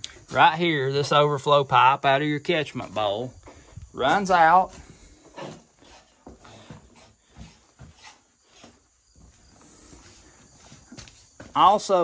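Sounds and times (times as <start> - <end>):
footsteps on gritty concrete: 2.8 - 12.0.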